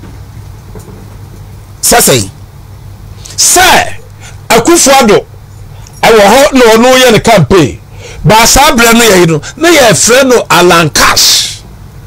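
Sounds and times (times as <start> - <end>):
low background hum: 0.0 - 12.0
man speaking: 1.8 - 2.4, 3.3 - 5.3, 6.0 - 11.6.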